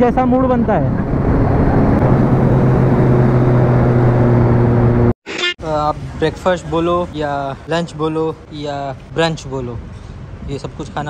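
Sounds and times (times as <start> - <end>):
motorcycle engine hum: 0.0 - 5.1
rushing wind: 0.0 - 5.1
road noise: 0.0 - 11.0.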